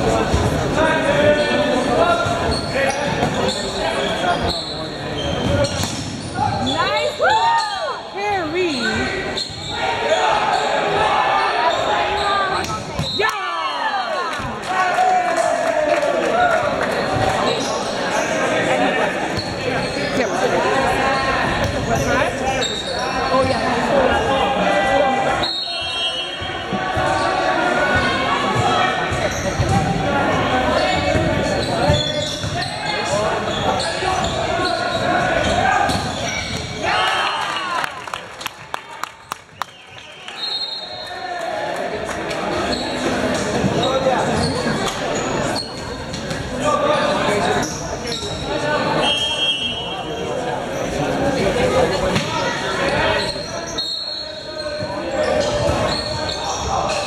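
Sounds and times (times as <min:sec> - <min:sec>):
people talking: 0:00.0 - 0:38.0, 0:40.0 - 0:57.0
sneakers squeaking on hardwood: 0:02.2 - 0:06.9, 0:25.7 - 0:36.8, 0:42.5 - 0:46.5, 0:52.1 - 0:57.0.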